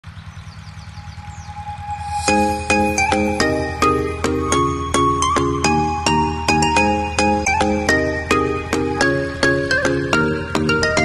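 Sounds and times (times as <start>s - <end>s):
propeller airplane engine drone: 0.0s - 11.0s
steady tone: 1.0s - 8.7s.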